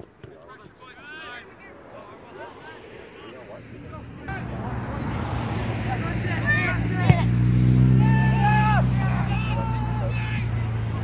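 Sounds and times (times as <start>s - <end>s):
players shouting: 0.5s - 11.0s
engine hum: 2.6s - 11.0s.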